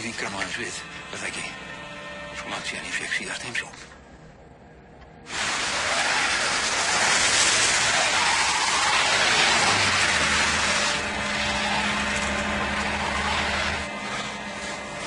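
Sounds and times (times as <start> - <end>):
tyres hissing on wet road: 5.3 - 15.0.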